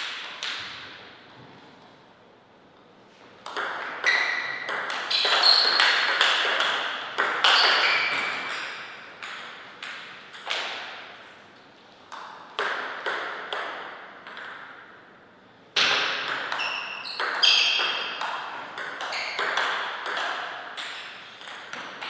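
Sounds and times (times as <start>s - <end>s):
ball bouncing on table: 3.4s - 10.9s, 12.1s - 14.7s, 15.8s - 22.0s
table tennis ball clicking: 17.2s - 22.0s.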